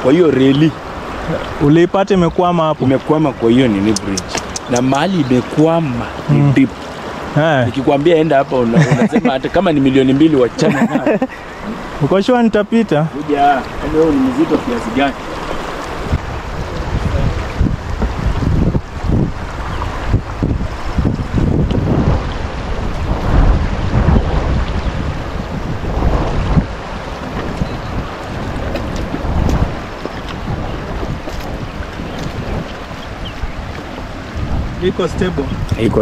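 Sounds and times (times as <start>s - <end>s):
fast-flowing water rushing: 0.0s - 36.0s
wind buffeting microphone: 0.0s - 36.0s.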